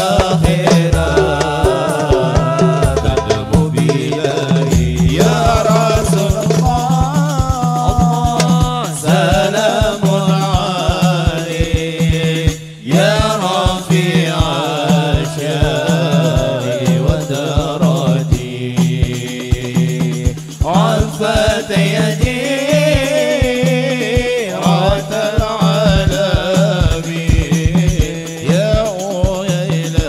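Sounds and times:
frame drums beating: 0.0 - 30.0
man singing devotional song: 0.0 - 30.0
men chanting: 0.0 - 30.0.

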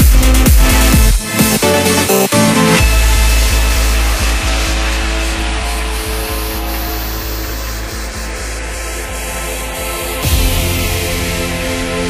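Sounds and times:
rising noise sweep: 2.7 - 12.0
deep bass note: 2.8 - 12.0.

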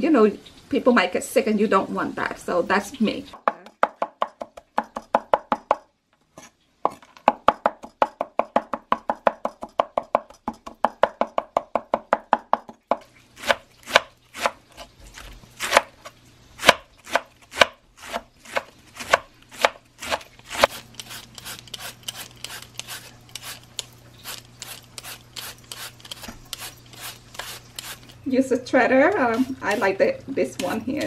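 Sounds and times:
cleaver chopping on wooden board: 16.6 - 20.8.

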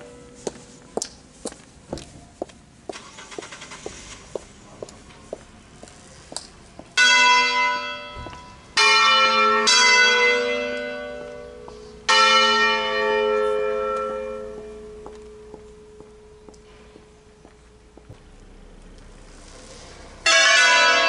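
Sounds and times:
church bells ringing: 0.0 - 0.8, 7.0 - 18.0, 20.1 - 21.0.

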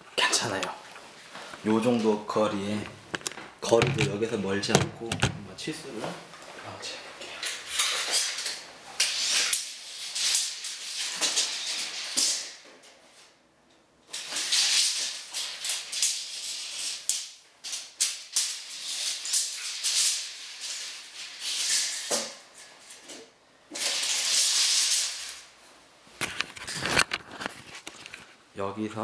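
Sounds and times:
tape measure scraping on floor: 7.7 - 12.5, 14.1 - 25.5.

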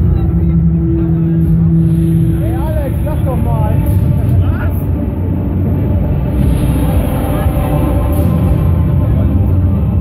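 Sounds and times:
fairground ride rumbling: 0.0 - 10.0
steady hum: 0.0 - 10.0.

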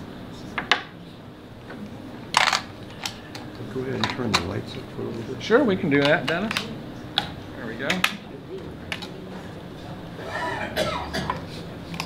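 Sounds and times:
person coughing: 10.2 - 11.6.

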